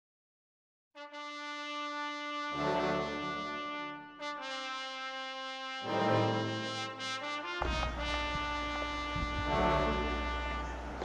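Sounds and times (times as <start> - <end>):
long held brass note: 1.0 - 11.0.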